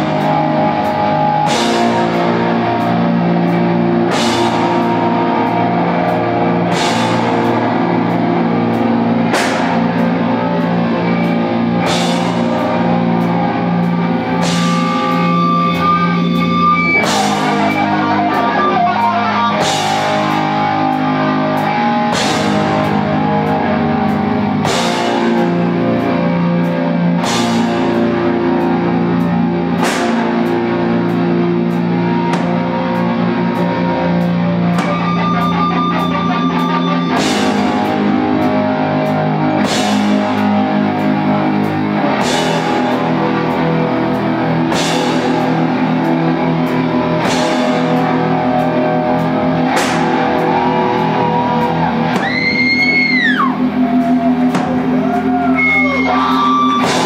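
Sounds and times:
distorted electric guitars: 0.0 - 57.0
drum kit: 0.0 - 57.0.

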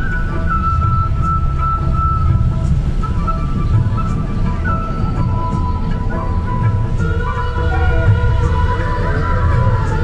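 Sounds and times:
bus engine rumble: 0.0 - 10.0.

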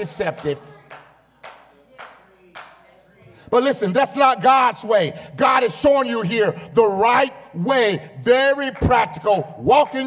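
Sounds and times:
faint hand claps: 0.0 - 2.8.

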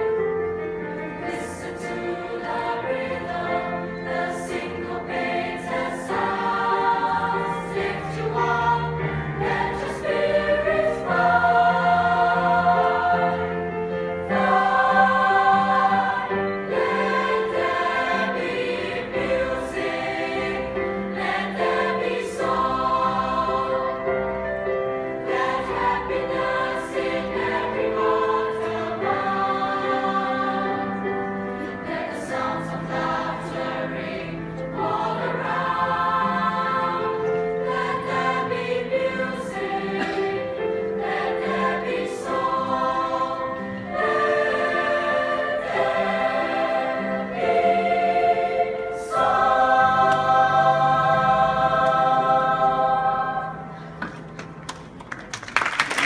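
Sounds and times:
mixed choir singing in harmony: 0.0 - 54.4.

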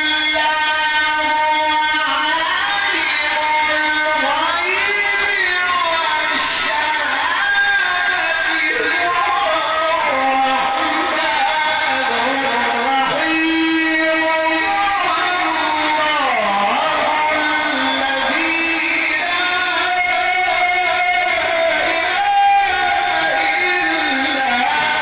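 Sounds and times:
man chanting recitation into microphone: 0.0 - 25.0.

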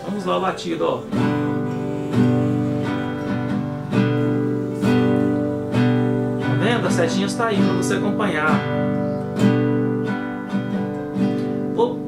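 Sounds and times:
classical guitar strumming: 0.0 - 12.0.

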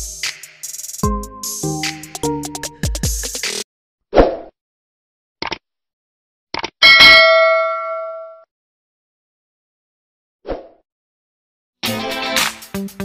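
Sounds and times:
bright bell ding: 6.8 - 8.4.

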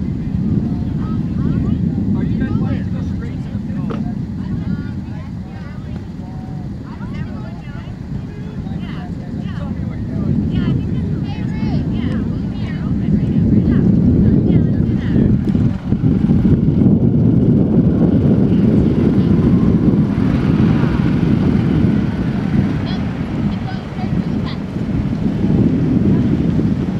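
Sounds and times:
faint distant voices: 0.0 - 16.4, 17.6 - 26.9
low rumbling outdoor noise: 0.0 - 26.9.

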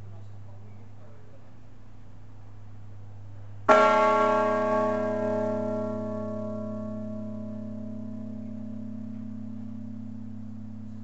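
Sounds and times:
church bell strike: 3.7 - 11.0.

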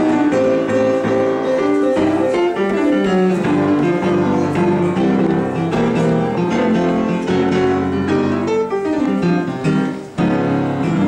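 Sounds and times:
boogie-woogie upright piano: 0.0 - 11.0.

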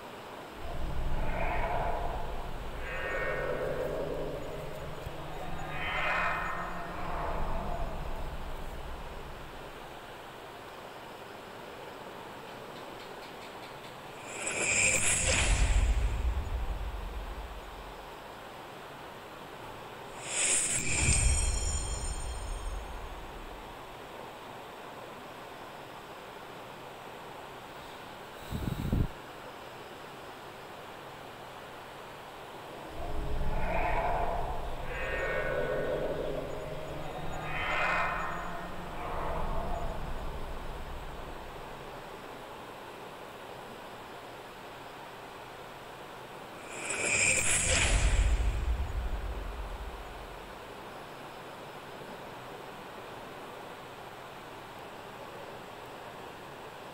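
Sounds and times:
rumble and hiss: 0.0 - 56.9.

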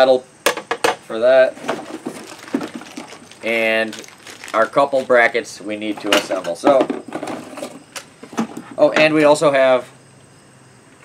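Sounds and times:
hands rummaging in cardboard box: 1.6 - 5.2.

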